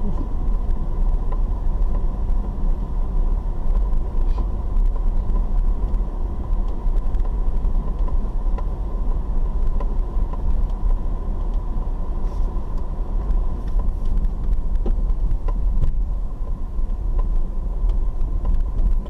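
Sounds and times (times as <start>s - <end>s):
tyres and engine rumbling: 0.0s - 19.0s.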